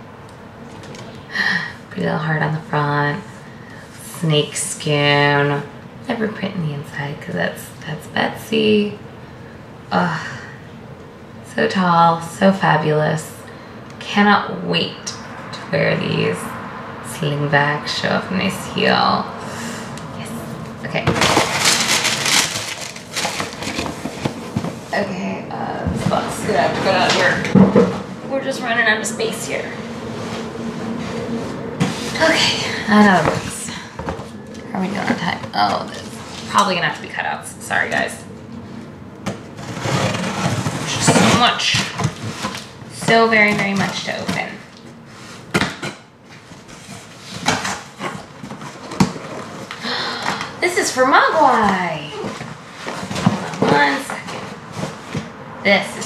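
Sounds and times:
cardboard scraping and rustling: 21.0s - 25.0s, 39.6s - 45.6s, 51.4s - 55.4s
paper and wrapping rustling: 21.1s - 25.1s, 46.3s - 55.3s.

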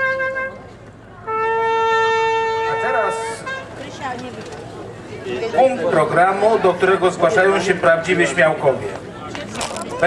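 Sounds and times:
horn-like wind instrument note: 0.0s - 3.8s.

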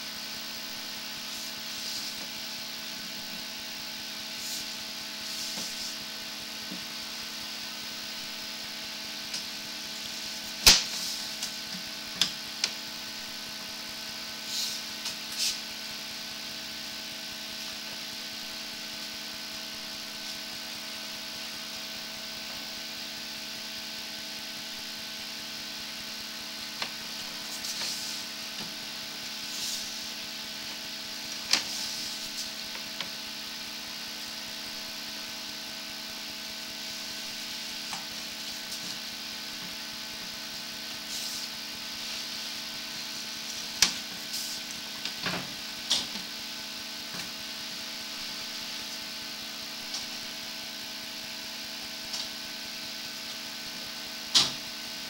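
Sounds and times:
electrical hum and hiss: 0.0s - 55.0s.

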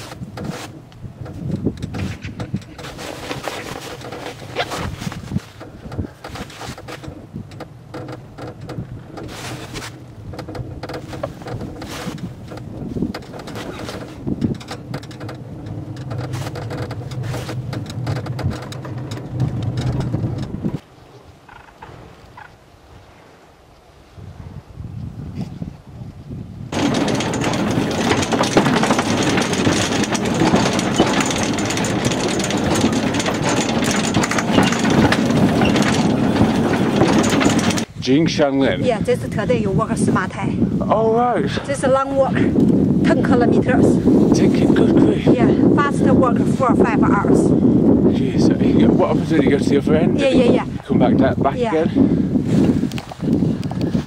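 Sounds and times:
cable car mechanical hum: 0.0s - 20.8s, 26.7s - 38.0s, 41.7s - 50.8s
rail car clattering on track: 5.4s - 20.8s, 26.7s - 37.9s.

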